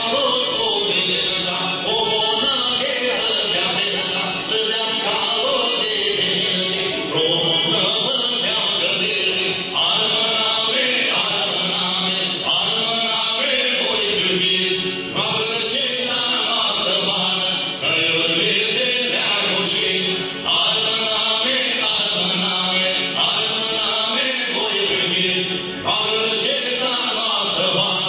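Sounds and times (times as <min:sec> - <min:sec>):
person singing in chant-like phrases: 0:00.0 - 0:28.0.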